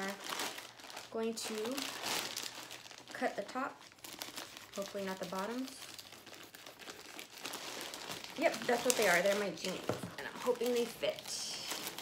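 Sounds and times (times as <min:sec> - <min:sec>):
plastic bag tearing open: 0:00.0 - 0:12.0
plastic mailer bag crinkling: 0:00.0 - 0:12.0.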